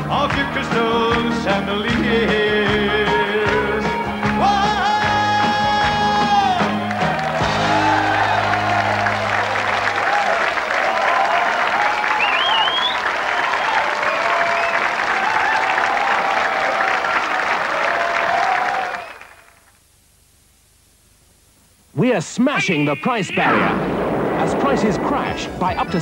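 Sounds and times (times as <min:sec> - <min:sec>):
audience applauding and cheering: 0:03.8 - 0:19.7.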